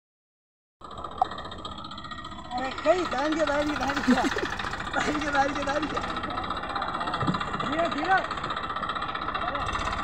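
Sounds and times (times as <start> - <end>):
tractor diesel engine running: 0.8 - 10.0.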